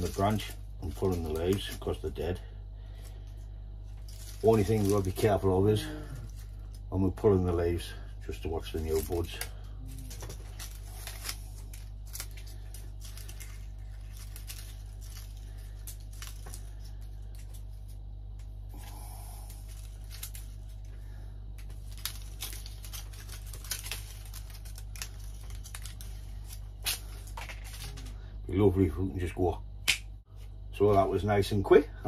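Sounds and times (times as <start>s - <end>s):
dry leaves crackling and tearing: 0.0s - 28.1s
steady low hum: 0.0s - 32.0s.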